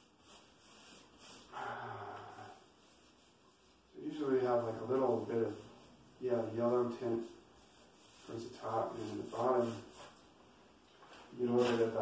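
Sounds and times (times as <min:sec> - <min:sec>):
man humming: 0:01.6 - 0:02.6.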